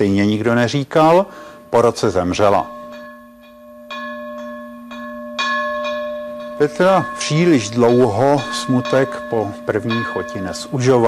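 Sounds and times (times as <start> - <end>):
deep bell tolling: 1.6 - 11.0.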